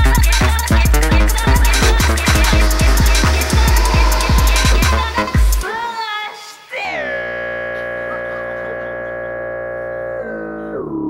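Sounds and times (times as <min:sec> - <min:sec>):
amplified guitar chord: 0:01.5 - 0:05.9.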